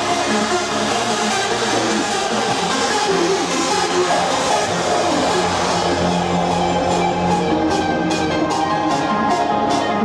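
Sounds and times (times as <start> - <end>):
held synth chords: 0.0 - 10.0.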